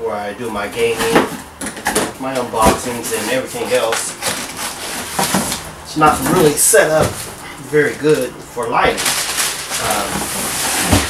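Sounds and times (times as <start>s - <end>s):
cardboard box rustling and scraping: 2.6s - 7.4s, 8.9s - 11.0s.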